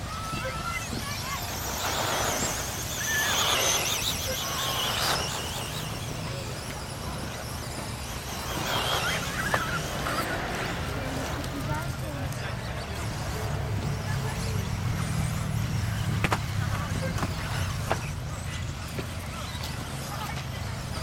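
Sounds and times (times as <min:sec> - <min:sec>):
rc car motor and gear whine: 0:00.0 - 0:21.0.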